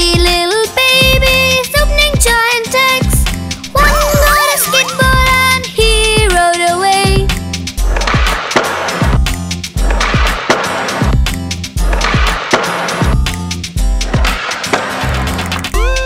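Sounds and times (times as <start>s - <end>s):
instrumental children's song: 0.0s - 7.8s, 13.0s - 16.0s.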